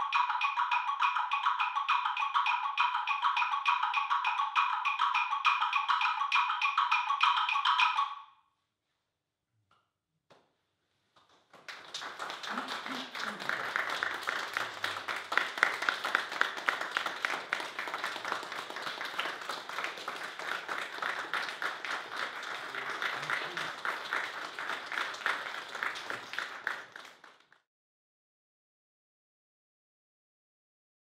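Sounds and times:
audience applauding: 0:11.3 - 0:27.6.

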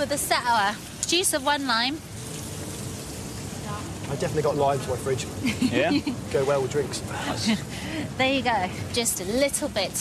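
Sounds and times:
wok sizzling: 0:00.0 - 0:10.0.

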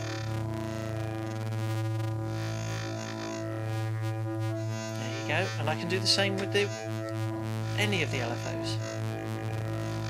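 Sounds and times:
synthesizer oscillator low note: 0:00.0 - 0:10.0.

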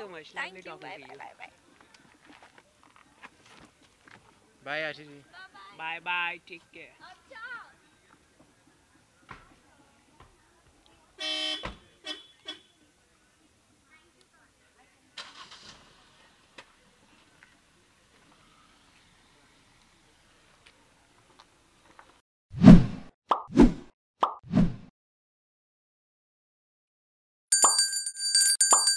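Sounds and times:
car horn toot: 0:11.2 - 0:12.8.

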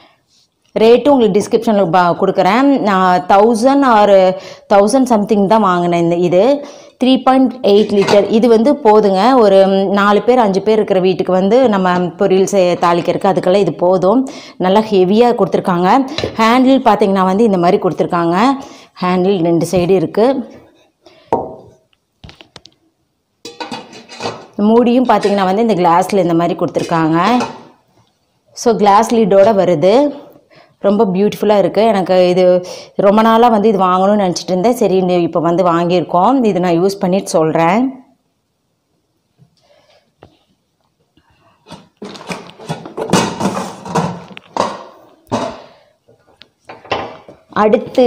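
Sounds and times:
rustling and knocking of cookware: 0:07.7 - 0:08.6, 0:20.6 - 0:22.4, 0:23.4 - 0:27.8, 0:41.6 - 0:48.0
metal pan knock: 0:23.4 - 0:24.0.

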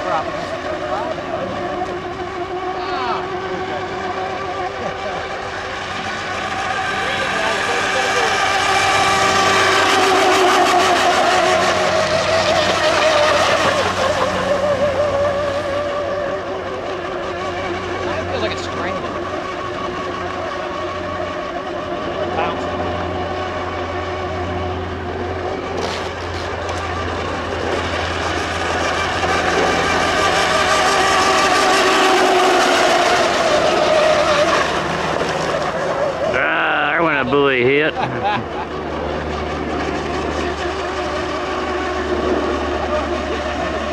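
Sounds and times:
rc boat motors whining: 0:00.0 - 0:43.9.

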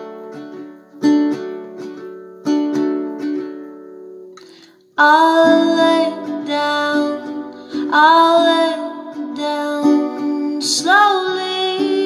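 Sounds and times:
fingerpicked classical guitar: 0:00.0 - 0:12.0
person breathing in: 0:04.4 - 0:04.8, 0:07.5 - 0:07.9.

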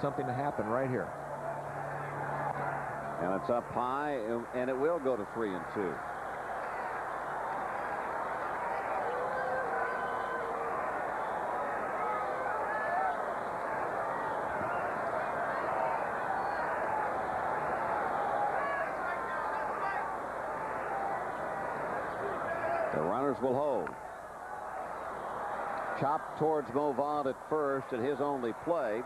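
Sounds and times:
crowd chatter: 0:00.0 - 0:29.0.

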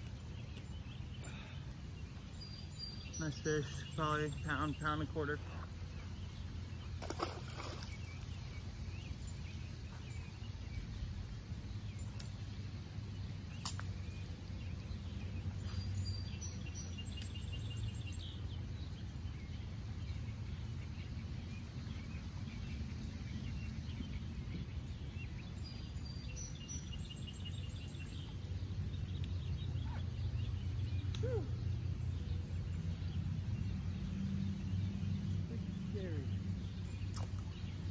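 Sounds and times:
birds chirping: 0:00.0 - 0:37.9
fish splashing into water: 0:07.0 - 0:08.0.

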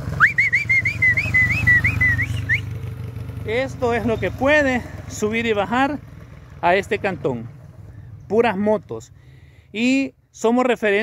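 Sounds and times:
motorcycle engine running: 0:00.0 - 0:09.7
person whistling warbling note: 0:00.2 - 0:02.7.

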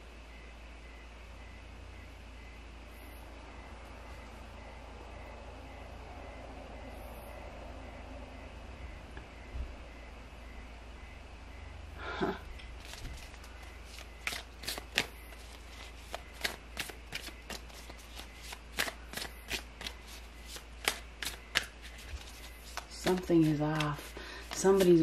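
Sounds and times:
cards being shuffled: 0:12.8 - 0:25.0.

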